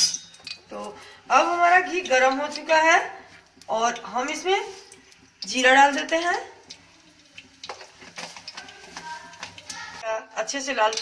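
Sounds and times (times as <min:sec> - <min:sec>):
seeds sizzling in hot fat: 0:00.0 - 0:11.0
small crackles: 0:00.4 - 0:10.0.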